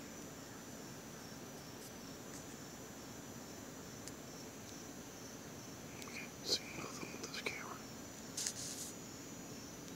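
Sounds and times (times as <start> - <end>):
insects chirring: 0.0 - 9.9
soft whispering: 6.0 - 7.9.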